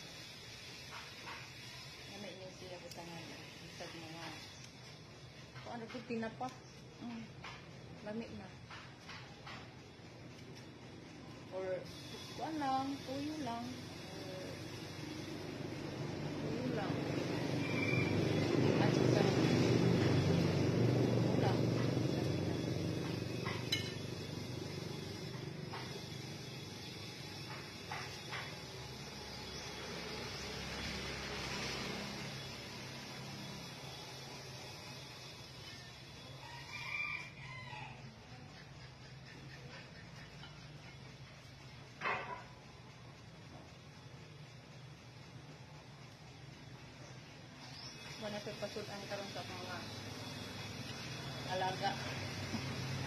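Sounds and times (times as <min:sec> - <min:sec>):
vehicle passing close by: 0:15.6 - 0:25.5, 0:29.4 - 0:35.3, 0:50.0 - 0:53.0
rooster crowing: 0:17.2 - 0:19.3, 0:36.1 - 0:38.5.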